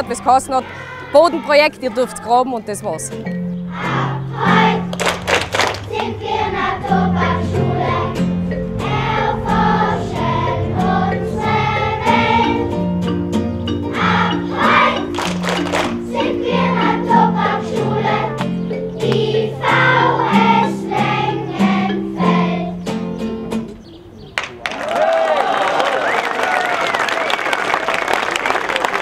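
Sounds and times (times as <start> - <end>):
children's choir singing: 0.0 - 23.0
guitar accompaniment: 0.0 - 23.8.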